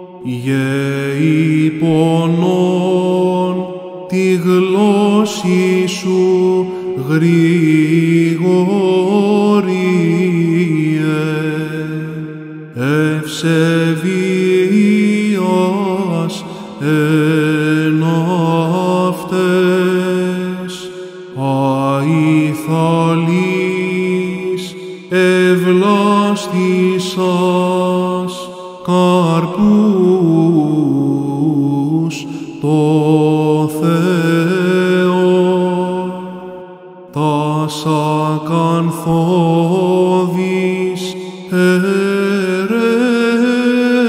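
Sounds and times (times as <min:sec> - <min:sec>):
man chanting solo: 0:00.0 - 0:44.0
singer breathing: 0:06.7 - 0:07.0, 0:16.4 - 0:16.8, 0:20.8 - 0:21.4, 0:24.7 - 0:25.1, 0:28.5 - 0:28.9, 0:32.2 - 0:32.6, 0:41.1 - 0:41.5.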